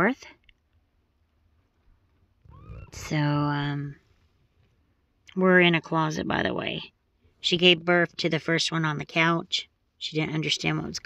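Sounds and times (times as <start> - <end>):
cat mewing: 2.4 - 3.1.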